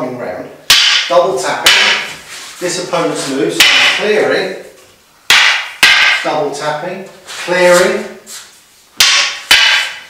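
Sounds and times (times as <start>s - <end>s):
wooden canes clacking: 0.7s - 2.3s, 3.6s - 4.2s, 4.8s - 6.3s, 9.0s - 10.0s.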